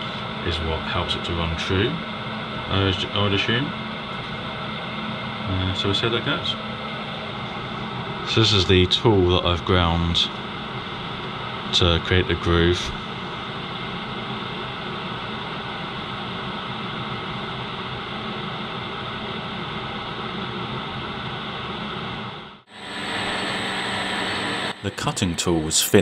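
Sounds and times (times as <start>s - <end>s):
metal lathe running with whine: 0.0s - 26.0s.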